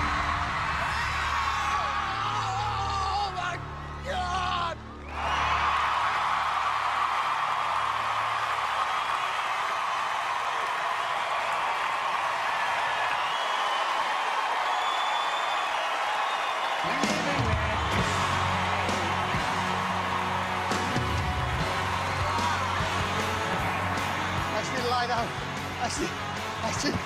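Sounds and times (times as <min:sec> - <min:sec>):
audience cheering and screaming: 0:00.0 - 0:27.0
music with deep bass: 0:16.9 - 0:27.0.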